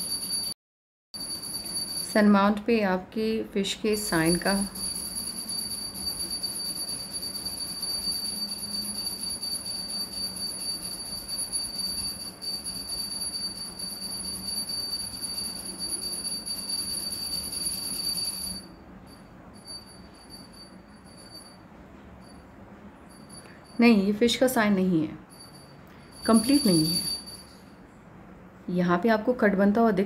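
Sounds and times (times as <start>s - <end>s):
high-pitched ringing tone: 0.0s - 0.6s, 1.2s - 2.7s, 3.9s - 28.0s.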